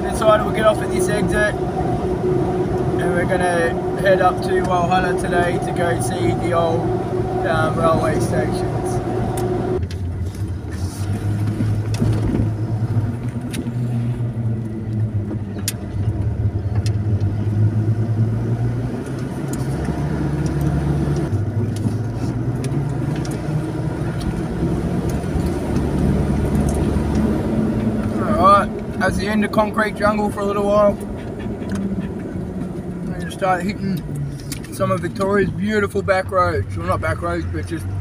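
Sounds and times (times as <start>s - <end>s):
car engine and road noise: 0.0s - 38.0s.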